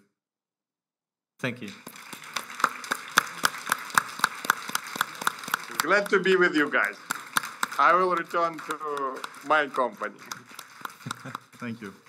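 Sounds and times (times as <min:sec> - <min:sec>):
hands clapping sharply: 0:01.5 - 0:12.0
patter of applause: 0:01.5 - 0:12.0.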